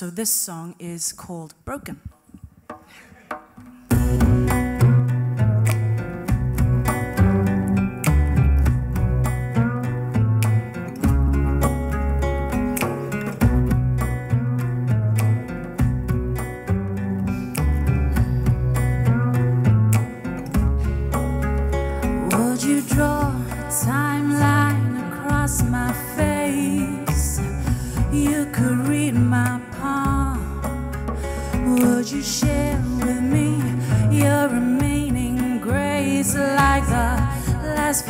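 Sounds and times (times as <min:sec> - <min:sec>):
steady drum beat: 0:02.5 - 0:05.2
plucked guitar: 0:02.6 - 0:38.0
bass line: 0:03.9 - 0:38.0.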